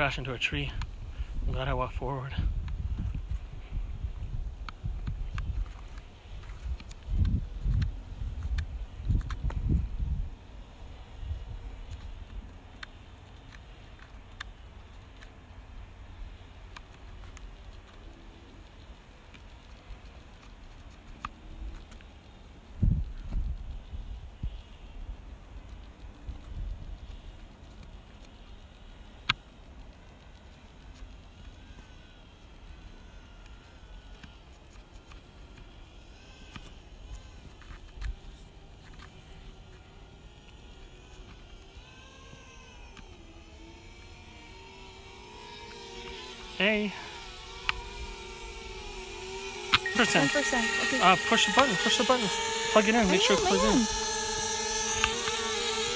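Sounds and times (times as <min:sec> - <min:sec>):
wind buffeting microphone: 0:00.8 - 0:10.4, 0:22.8 - 0:27.1.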